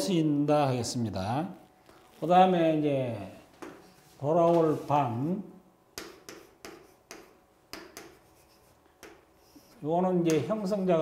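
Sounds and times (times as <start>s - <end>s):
chalk writing on chalkboard: 6.0s - 10.6s.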